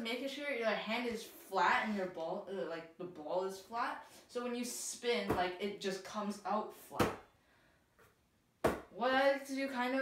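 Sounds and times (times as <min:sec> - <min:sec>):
basketball slapped between hands: 0:08.6 - 0:08.9.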